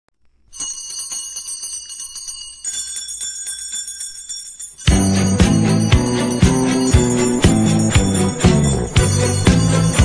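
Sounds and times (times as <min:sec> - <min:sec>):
bell ringing rapidly: 0:00.6 - 0:10.0.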